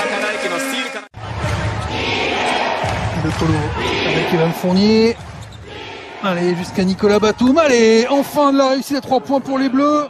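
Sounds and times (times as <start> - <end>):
crowd din: 0.0 - 10.0.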